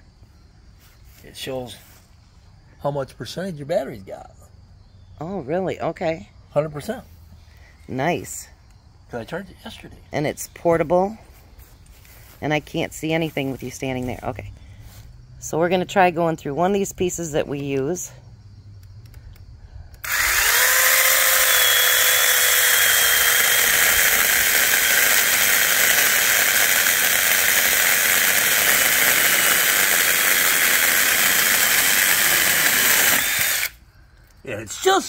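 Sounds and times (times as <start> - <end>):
mini chainsaw cutting log: 20.0 - 33.8.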